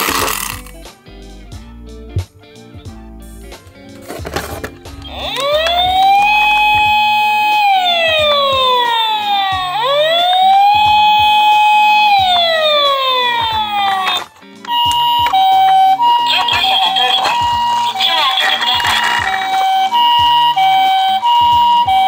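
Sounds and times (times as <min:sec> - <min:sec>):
background music: 0:00.0 - 0:22.0
toy ambulance siren wailing: 0:05.0 - 0:22.0.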